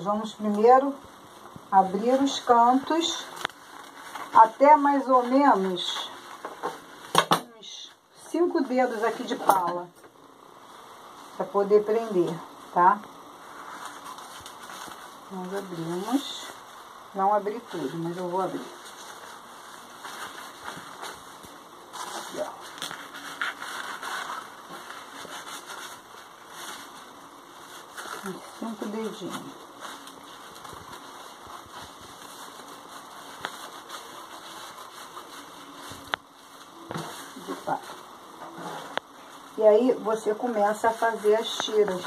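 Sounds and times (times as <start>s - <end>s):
crepe paper rustling: 0.0s - 7.2s, 11.1s - 42.0s.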